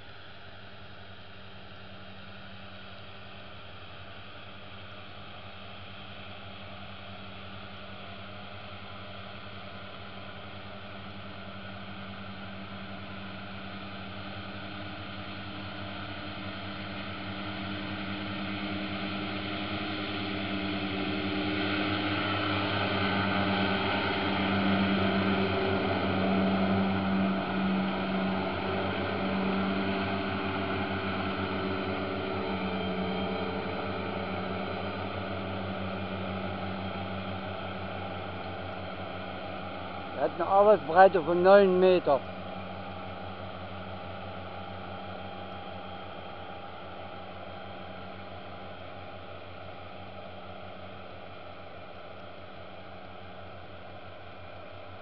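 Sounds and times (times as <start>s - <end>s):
mower engine running: 16.5s - 42.1s.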